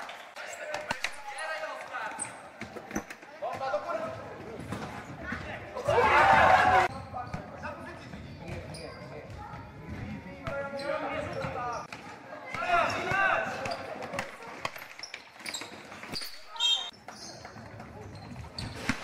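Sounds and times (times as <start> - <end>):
basketballs bouncing on floor: 2.2 - 19.0
children shouting: 5.8 - 6.9.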